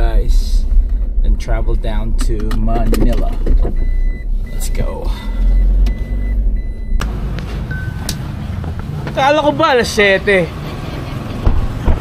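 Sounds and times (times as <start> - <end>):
car engine and road rumble: 0.0 - 12.0
outdoor background: 0.0 - 12.0
short beep: 3.8 - 8.1.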